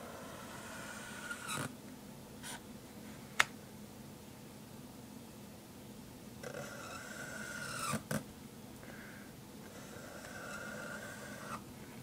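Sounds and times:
marker squeaking on paper: 0.2s - 1.7s, 6.4s - 8.1s, 9.7s - 11.6s.

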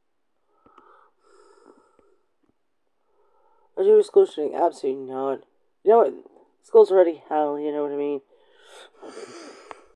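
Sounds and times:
faint breath: 0.4s - 2.3s, 3.0s - 3.8s, 8.3s - 9.9s
faint small clicks: 0.6s - 0.9s.

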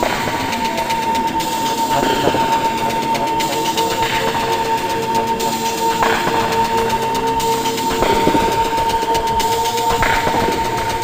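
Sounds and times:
steady high tone: 0.0s - 11.0s.

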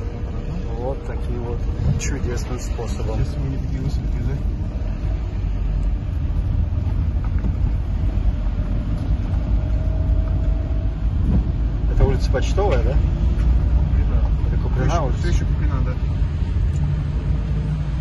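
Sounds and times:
car cabin rumble on rough road: 0.0s - 18.0s
tyre and road noise: 0.0s - 18.0s.

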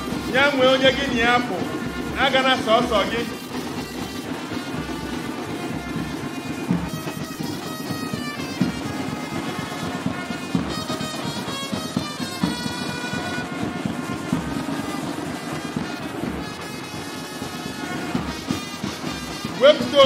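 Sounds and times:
bass drum and side drums: 0.0s - 20.0s
trumpets playing melody: 0.0s - 20.0s.

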